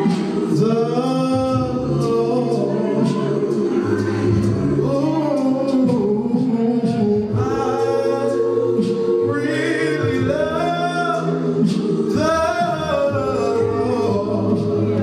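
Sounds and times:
man singing into a microphone: 0.0 - 8.4, 12.2 - 15.0
congregation singing held notes: 0.0 - 15.0.

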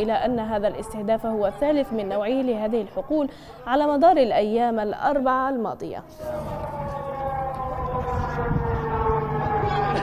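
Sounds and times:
alarm siren wailing: 6.0 - 10.0.

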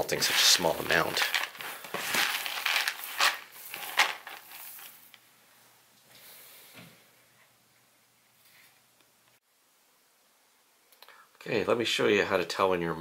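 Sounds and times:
grain kernels rustling: 0.0 - 5.1.

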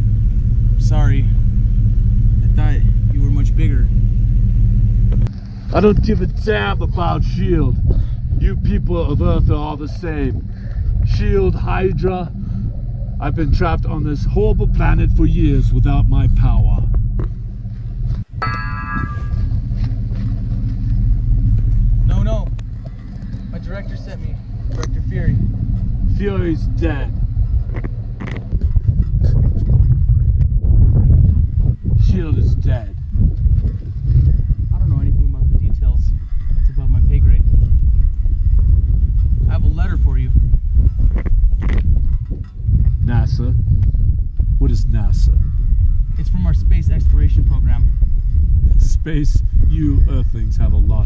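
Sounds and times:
low rumble: 0.0 - 51.0
bell-like ringing tone: 18.4 - 19.8.

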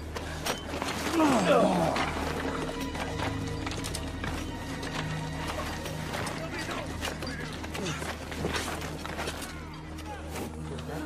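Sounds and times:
dramatic orchestral music: 0.0 - 11.0
horse hooves clopping: 2.0 - 9.8.

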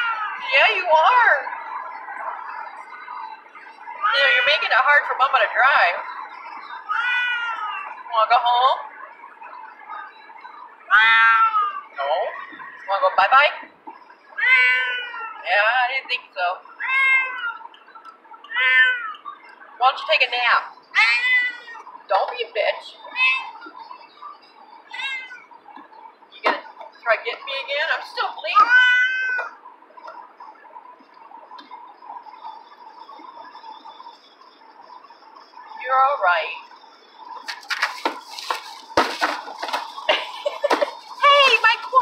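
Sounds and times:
cat meowing: 0.0 - 0.5, 6.9 - 7.9, 10.9 - 12.0, 14.4 - 15.5, 16.8 - 17.7, 18.4 - 19.2, 21.0 - 21.9, 24.8 - 25.5, 28.5 - 29.6
paper bag crinkling: 37.4 - 42.0.

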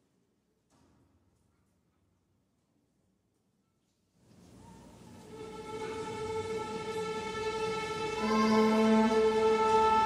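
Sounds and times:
orchestra holding sustained chord: 5.3 - 10.0.

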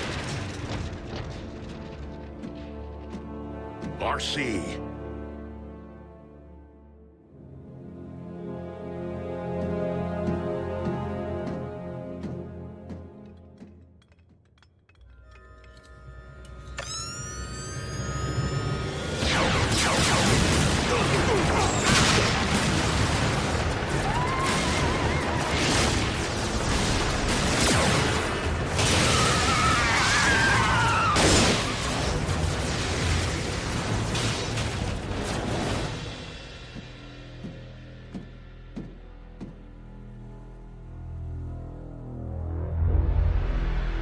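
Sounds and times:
blaster fire: 0.0 - 1.7, 19.1 - 36.3
explosions: 0.0 - 2.3, 19.1 - 36.5
background music: 0.0 - 44.0.

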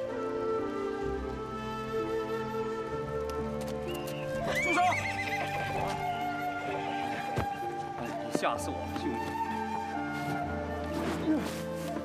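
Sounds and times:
background music: 0.0 - 12.0
horse whinnying: 4.4 - 6.7.

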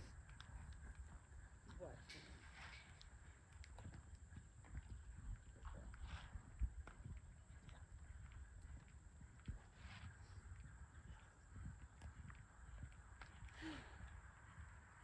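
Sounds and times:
horse hoofbeats on sand: 0.0 - 15.0.

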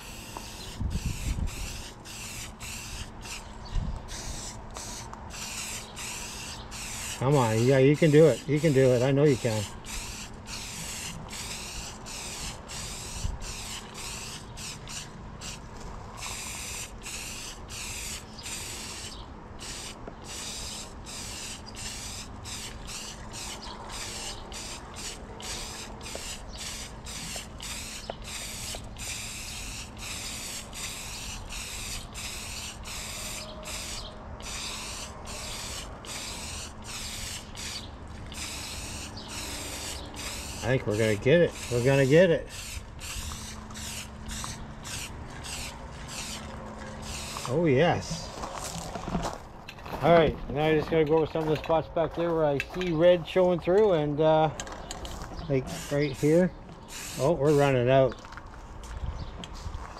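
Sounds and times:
spray paint can hissing: 0.0 - 48.2, 55.0 - 57.8.

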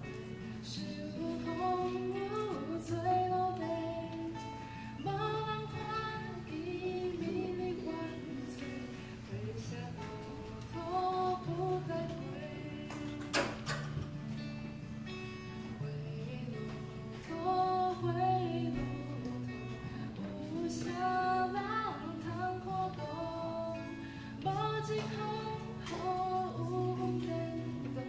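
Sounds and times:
woman singing: 0.0 - 14.3, 15.1 - 28.0
acoustic guitar: 0.0 - 28.0.

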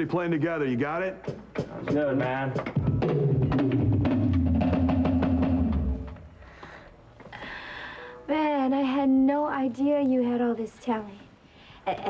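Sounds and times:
drum hits: 1.2 - 6.4
rock band playing: 2.7 - 6.2.

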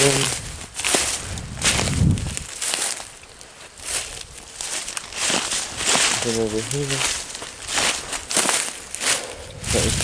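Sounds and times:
footsteps crunching dry leaves: 0.0 - 10.0.

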